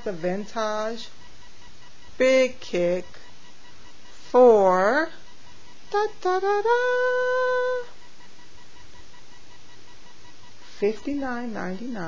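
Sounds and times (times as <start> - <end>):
background hiss: 0.0 - 12.0
faint high whine: 0.0 - 12.0.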